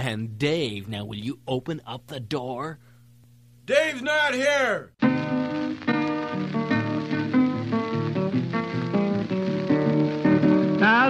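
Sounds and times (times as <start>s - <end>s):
blues guitar picked notes: 5.0s - 11.0s.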